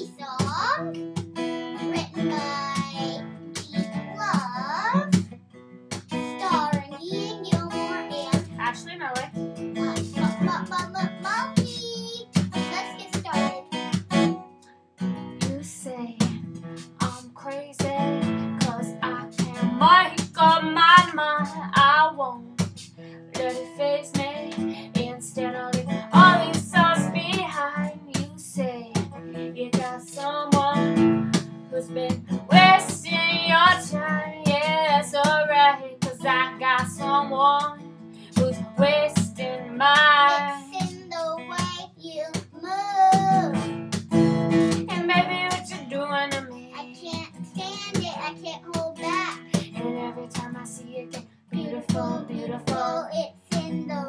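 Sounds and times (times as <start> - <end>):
acoustic guitar strummed: 0.0 - 54.0
young boy singing: 1.9 - 5.2, 6.1 - 8.6, 9.7 - 13.8, 15.4 - 22.7, 23.3 - 31.0, 31.7 - 37.7, 38.4 - 43.6, 44.8 - 54.0
woman singing: 15.4 - 16.4, 17.0 - 22.7, 23.3 - 40.6, 44.7 - 46.6, 49.5 - 53.9.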